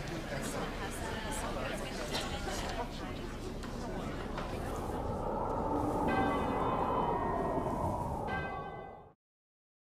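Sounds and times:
low murmur: 0:00.0 - 0:09.1.

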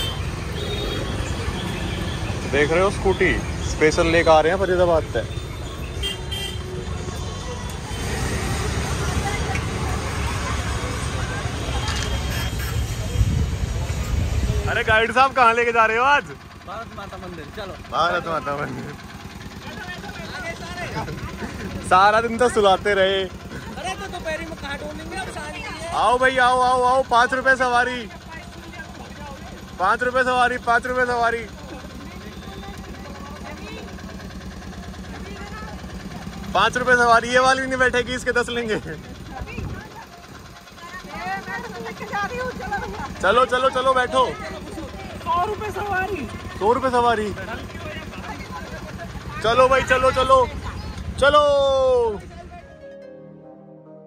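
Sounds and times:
auto-rickshaw engine idling: 0:00.0 - 0:53.0
passing vehicles rumble: 0:00.0 - 0:53.0.

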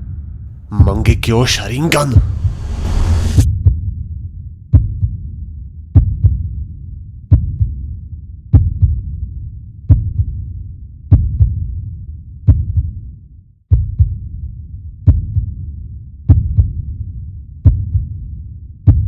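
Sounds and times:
low rumbling drone: 0:00.0 - 0:00.9, 0:02.2 - 0:11.0
heartbeat double thump: 0:02.1 - 0:04.0, 0:04.7 - 0:06.5, 0:07.3 - 0:07.8, 0:08.5 - 0:09.1, 0:09.9 - 0:10.4, 0:11.1 - 0:11.6, 0:12.5 - 0:13.0, 0:13.7 - 0:14.2, 0:15.0 - 0:15.6, 0:16.3 - 0:16.8, 0:17.6 - 0:18.2.

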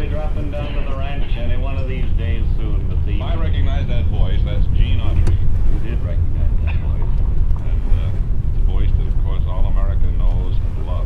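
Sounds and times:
car engine and road rumble: 0:00.0 - 0:11.0
old-time radio voices: 0:00.0 - 0:11.0.

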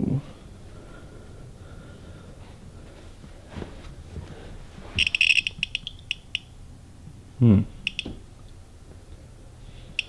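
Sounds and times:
detector beeping: 0:05.0 - 0:06.6, 0:07.8 - 0:08.2
short low vocal sound: 0:07.4 - 0:07.8.

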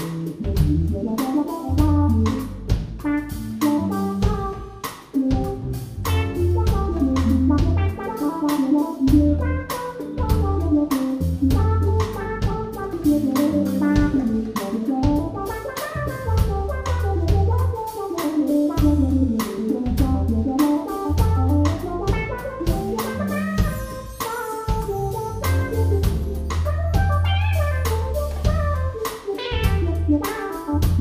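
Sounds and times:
deep bass pattern: 0:00.0 - 0:31.0
live jazz band playing: 0:00.0 - 0:31.0.

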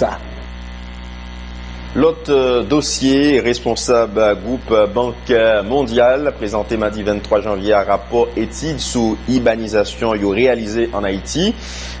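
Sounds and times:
man speaking: 0:00.0 - 0:00.5, 0:01.9 - 0:12.0
electrical mains hum: 0:00.0 - 0:12.0.

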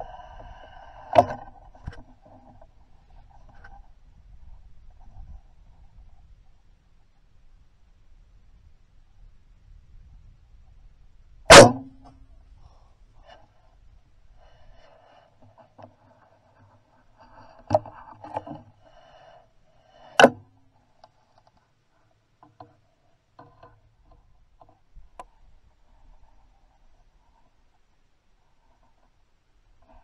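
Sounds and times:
arrow being nocked rustling: 0:11.5 - 0:12.1, 0:20.2 - 0:20.4.

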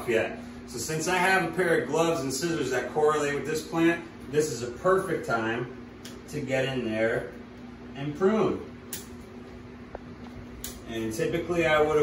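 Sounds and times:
room fan humming: 0:00.0 - 0:12.0.

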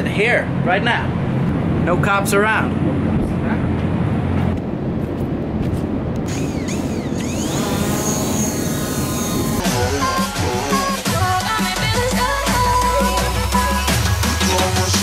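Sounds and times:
drone propeller whine: 0:02.6 - 0:15.0
electronic dance music: 0:06.3 - 0:15.0.

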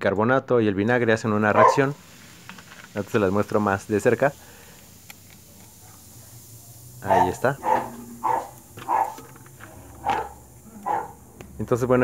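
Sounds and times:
dog barking: 0:01.6 - 0:02.0, 0:07.0 - 0:11.2.

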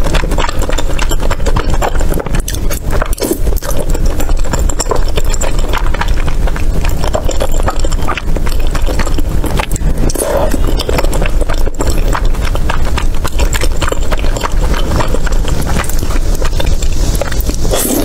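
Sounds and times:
wet chewing and mouth clicks: 0:00.0 - 0:18.0.

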